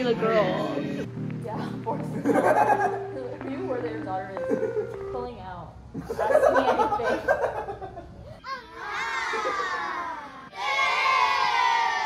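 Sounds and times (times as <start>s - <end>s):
people shrieking and yelling: 8.4s - 12.0s.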